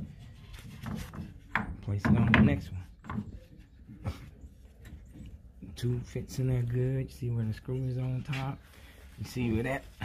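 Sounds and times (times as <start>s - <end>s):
wooden knocks and rubbing: 0.0s - 4.0s.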